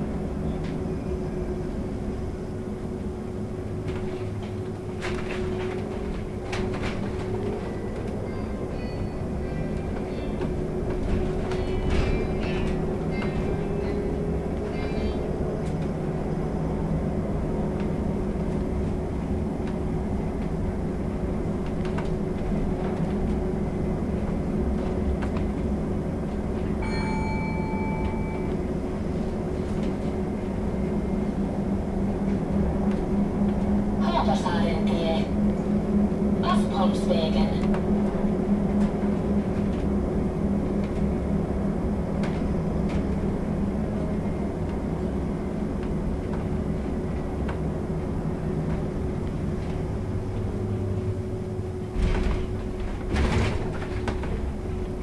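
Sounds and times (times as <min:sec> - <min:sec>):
short electronic beep: 0:26.8 - 0:28.5.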